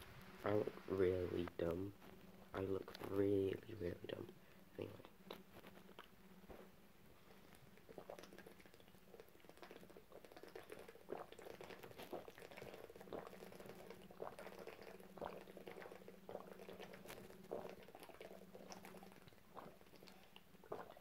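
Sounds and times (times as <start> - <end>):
person gulping water: 7.3 - 21.0
water glugging in plastic bottle: 7.9 - 21.0.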